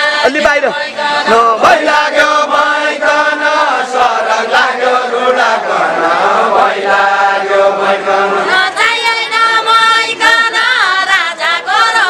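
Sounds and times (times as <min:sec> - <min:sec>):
group singing folk song: 0:00.0 - 0:12.0.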